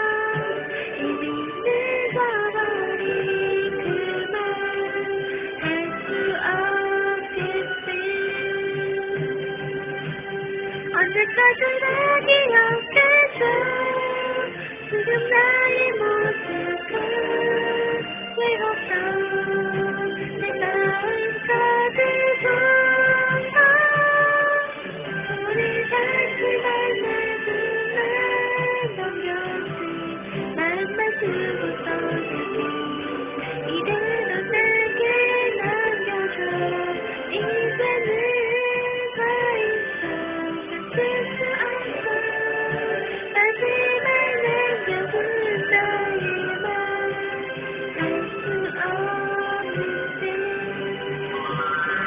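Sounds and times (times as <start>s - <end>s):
woman singing into microphone: 0.0s - 10.2s, 10.8s - 51.7s
karaoke backing track: 0.0s - 52.0s.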